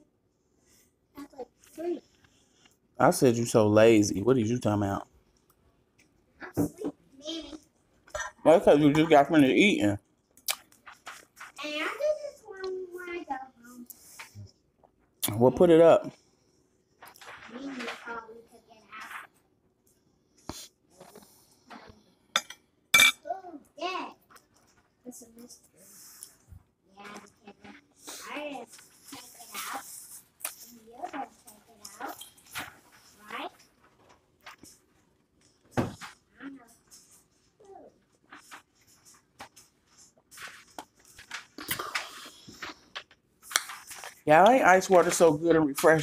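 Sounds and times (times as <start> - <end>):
fork clinking on a glass plate: 22.4 - 23.2.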